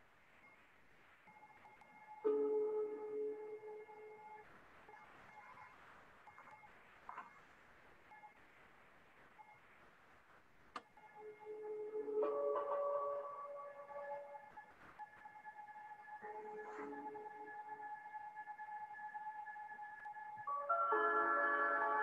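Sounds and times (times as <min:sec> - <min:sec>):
film music sustained tones: 0:11.1 - 0:22.0.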